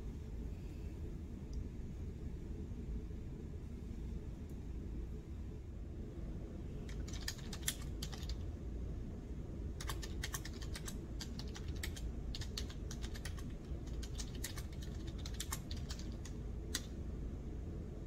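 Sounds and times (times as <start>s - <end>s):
low room hum: 0.0s - 18.0s
keyboard typing: 6.9s - 8.5s, 9.8s - 17.0s.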